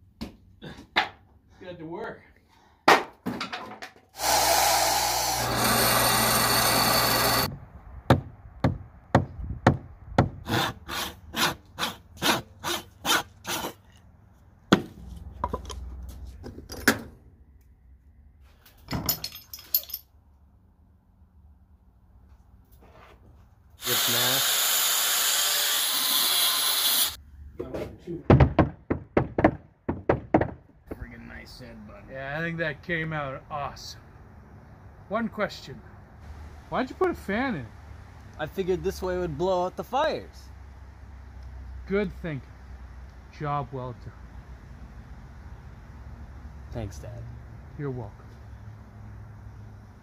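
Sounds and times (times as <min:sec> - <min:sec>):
power tool running: 0:04.2 - 0:07.5, 0:23.8 - 0:27.2
sharp knocks on wood: 0:08.1 - 0:10.4, 0:28.3 - 0:30.7.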